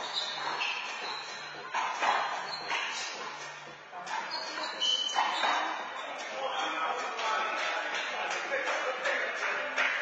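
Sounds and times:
sneakers squeaking on court: 0.0s - 6.8s
ball slapping wall and floor: 0.0s - 10.0s.

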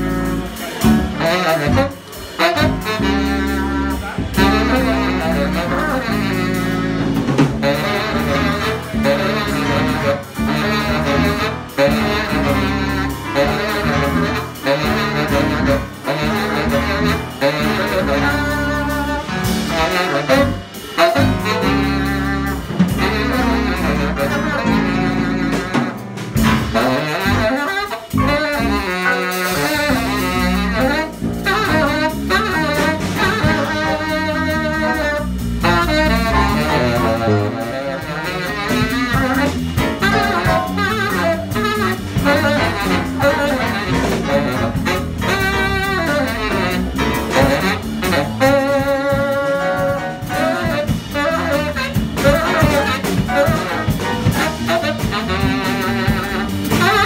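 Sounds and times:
bass: 0.0s - 57.0s
drum kit: 0.0s - 57.0s
saxophone playing jazz line: 0.0s - 57.0s.

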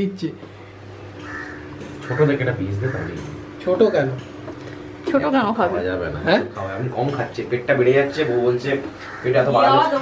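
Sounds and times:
low steady hum: 0.0s - 10.0s
crow cawing: 1.2s - 3.2s, 9.0s - 9.6s.

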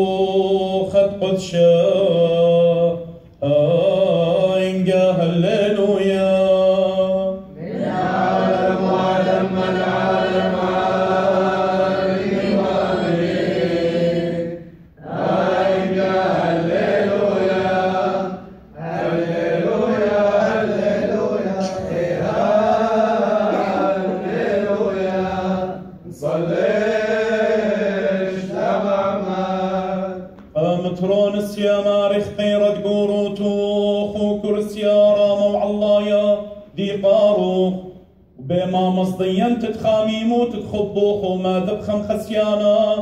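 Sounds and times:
men chanting a hymn in unison: 0.0s - 43.0s.

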